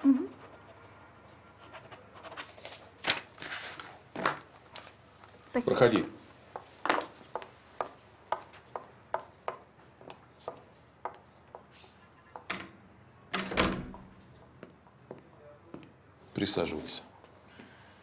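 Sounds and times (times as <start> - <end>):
door shutting with heavy thud: 13.3 - 14.0.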